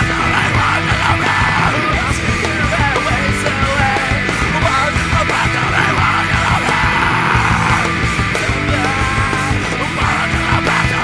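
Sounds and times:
heavy rock music: 0.0s - 11.0s
yelled vocals: 0.0s - 11.0s.

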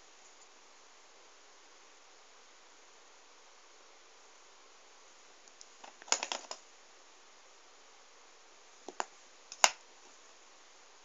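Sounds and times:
handling clicks and taps: 5.5s - 6.6s, 8.9s - 9.8s.

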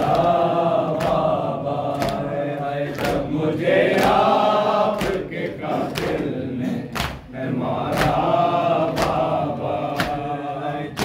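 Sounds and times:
hands slapping bare chests: 0.0s - 5.3s, 5.9s - 6.3s, 6.9s - 7.3s, 7.9s - 10.3s
men chanting together: 0.0s - 11.0s.

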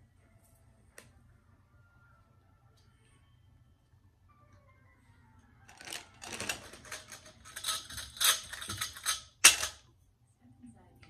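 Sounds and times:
metal tubes clattering: 5.8s - 9.8s.

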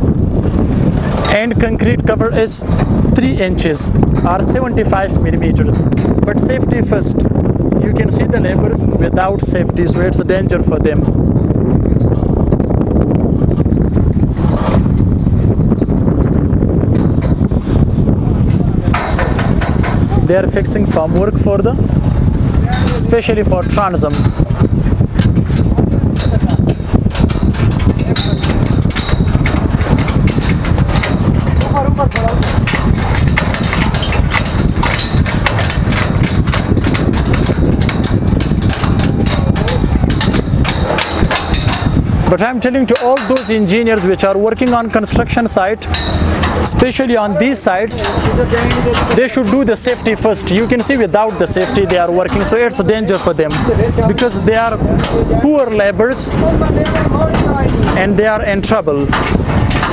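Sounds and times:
low engine rumble: 0.0s - 59.9s
wind buffeting microphone: 0.0s - 59.9s
metal clanks and taps: 0.4s - 7.5s, 11.9s - 21.8s, 22.7s - 59.9s.

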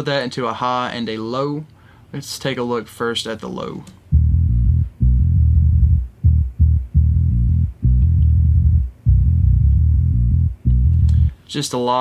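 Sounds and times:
low bass metal riff: 4.1s - 11.3s.

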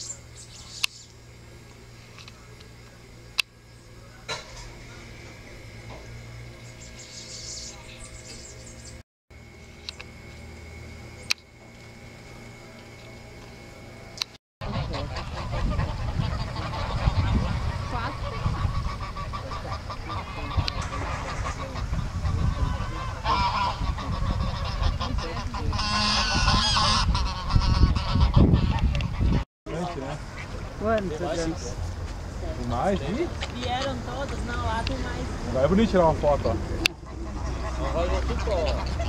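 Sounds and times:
geese honking: 14.6s - 29.4s, 32.8s - 39.0s.

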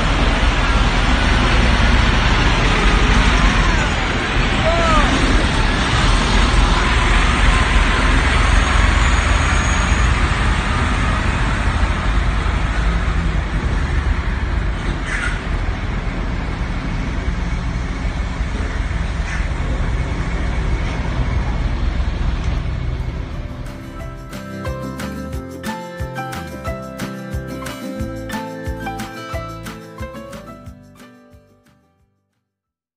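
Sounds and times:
diesel truck engines rumbling: 0.0s - 25.4s.

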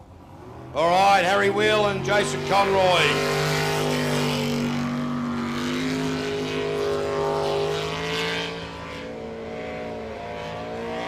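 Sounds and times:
boat engine at high revs: 0.2s - 11.0s.

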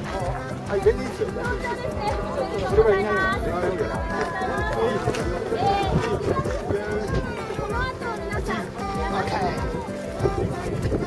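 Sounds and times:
footsteps crunching on gravel: 0.0s - 11.0s
people talking: 0.0s - 11.0s.

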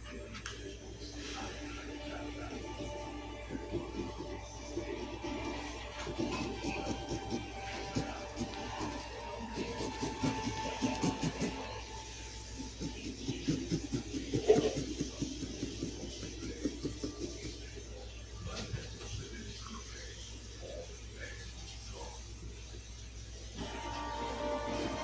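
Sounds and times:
knife scraping pumpkin: 3.2s - 11.9s, 12.5s - 17.8s.

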